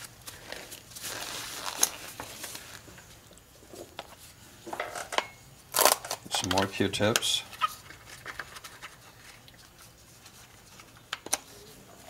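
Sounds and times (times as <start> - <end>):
plastic gloves crinkling: 0.0 - 4.4, 7.4 - 12.0.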